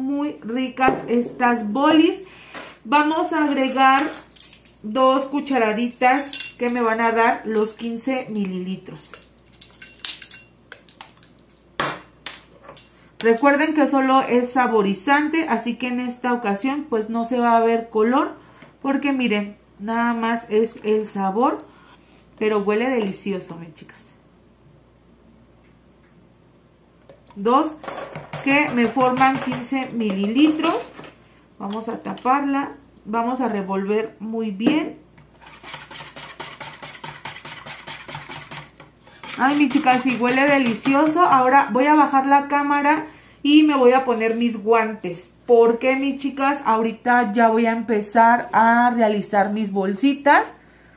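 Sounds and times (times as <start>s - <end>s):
spoon stirring in plastic bowl: 35.2s - 41.4s.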